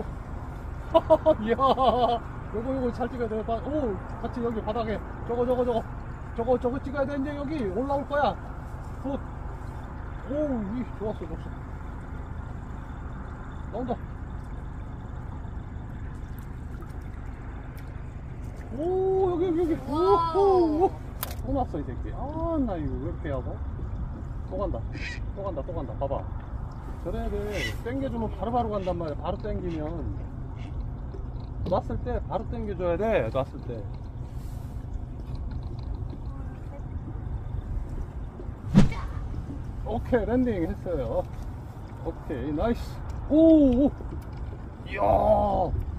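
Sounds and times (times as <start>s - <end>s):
low steady rumble: 0.0s - 45.9s
water lapping against boat hull: 0.0s - 45.9s
faint ticks: 28.5s - 38.6s, 43.0s - 44.8s
fish slapping on deck: 38.7s - 39.4s.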